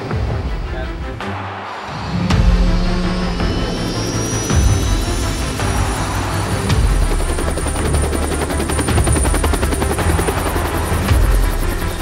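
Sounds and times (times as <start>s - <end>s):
high turbine whine: 2.3s - 12.0s
helicopter rotor blade chop: 3.3s - 12.0s.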